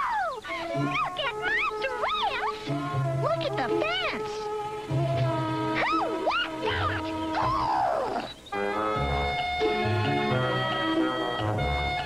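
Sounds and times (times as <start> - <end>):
cartoon soundtrack music: 0.0 - 12.0.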